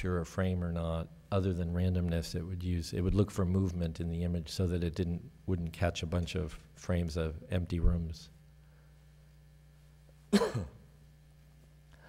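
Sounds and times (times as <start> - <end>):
low electrical hum: 0.0 - 12.0
man coughing: 10.3 - 10.9.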